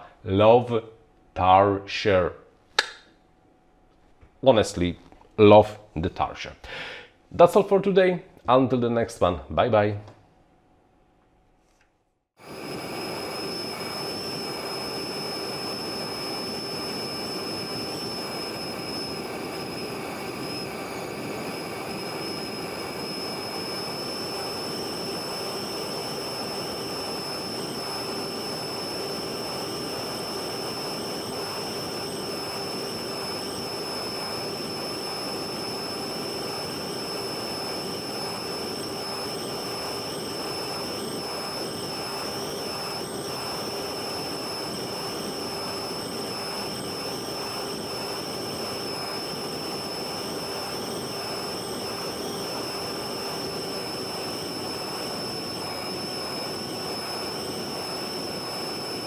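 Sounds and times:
high motor whine: 12.4 - 59.0
motor and propeller drone: 12.4 - 59.0.

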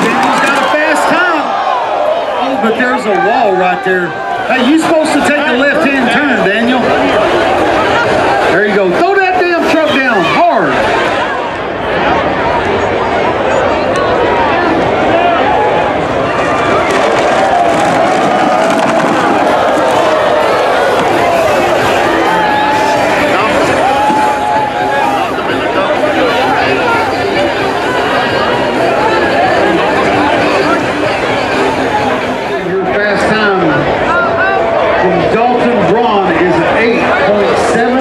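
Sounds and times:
crowd talking and shouting: 0.0 - 38.0.

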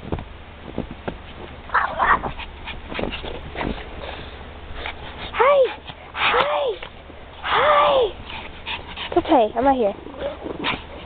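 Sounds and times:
soft knocks and thumps: 0.0 - 3.8
dog whining: 1.7 - 2.4.

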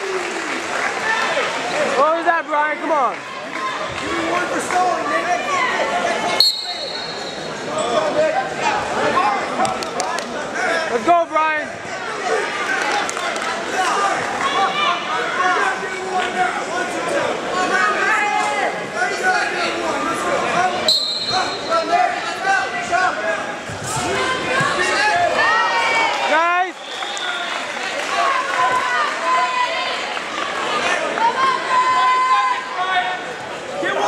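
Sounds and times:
referee's whistle blast: 6.4 - 7.5, 20.9 - 21.8
crowd shouting: 11.9 - 34.0.

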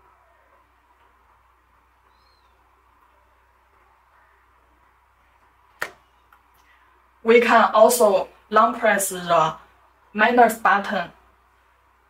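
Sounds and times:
faint high chirp: 2.0 - 4.5.

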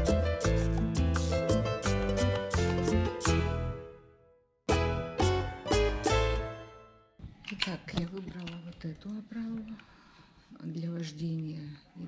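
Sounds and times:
woman speaking quietly: 10.6 - 12.0.

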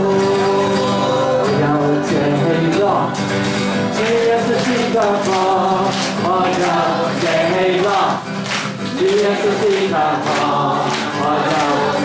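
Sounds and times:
congregation singing: 0.0 - 3.1, 3.8 - 12.0
hand clapping: 3.3 - 12.0.

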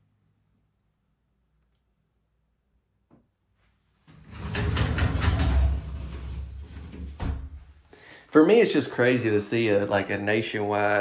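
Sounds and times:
rollers clicking: 4.1 - 7.1
sliding shower door rumbling: 4.1 - 7.8.

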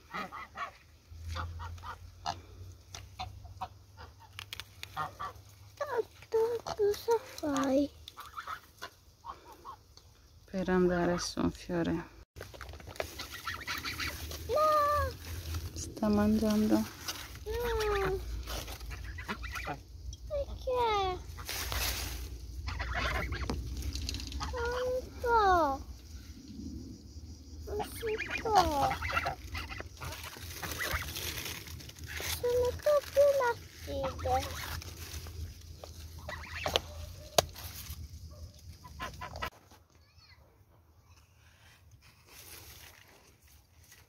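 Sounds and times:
goose honking: 4.9 - 5.4, 13.2 - 14.4, 18.9 - 19.8, 22.6 - 23.6, 27.9 - 31.1
brief rustle: 21.4 - 22.3.

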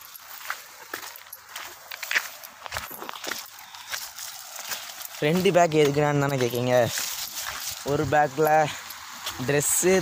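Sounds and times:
rustling handling noise: 0.0 - 9.3
footsteps and scuffs: 0.0 - 10.0.

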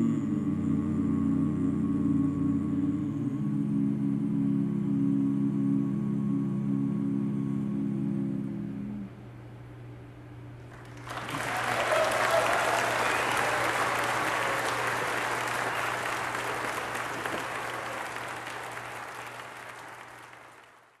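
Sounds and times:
faint low hum: 0.0 - 21.0
audience applauding: 10.7 - 21.0.

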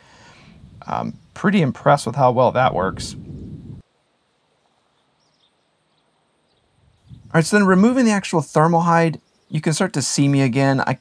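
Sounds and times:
low rumble: 2.6 - 3.8.

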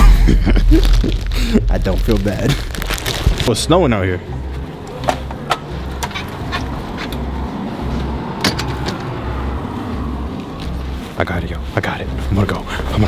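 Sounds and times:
pulsing low rumble: 0.0 - 3.5, 5.4 - 13.0
footsteps crunching in snow: 9.9 - 13.0.

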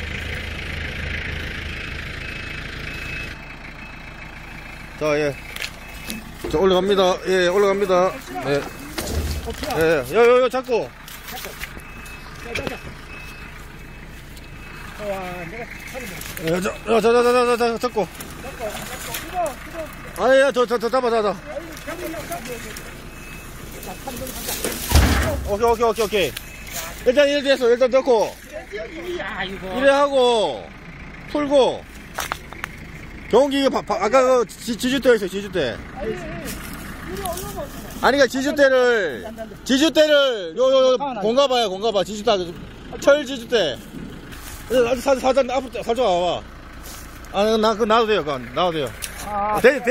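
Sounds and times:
front loader working: 0.0 - 49.9
tractor engine running: 0.0 - 49.9
voices: 0.0 - 49.9
faint high beep-like tone: 2.1 - 6.9, 11.4 - 18.9, 21.7 - 27.5.

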